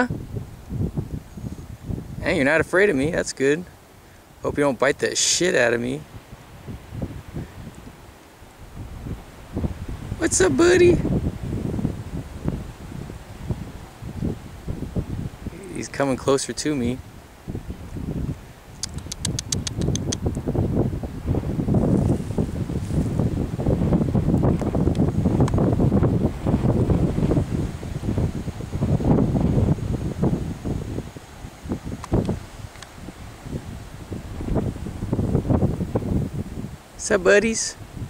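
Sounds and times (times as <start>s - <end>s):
wind buffeting microphone: 0.0s - 4.4s, 5.8s - 38.0s
small clicks: 18.8s - 20.2s.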